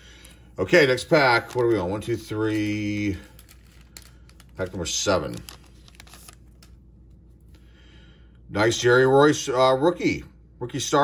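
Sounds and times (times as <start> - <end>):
soft foil rustle: 0.1 - 7.4.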